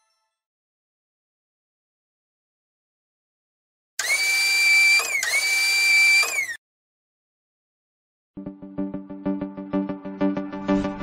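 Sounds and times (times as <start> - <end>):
small electric motor whirring: 4.0 - 6.6.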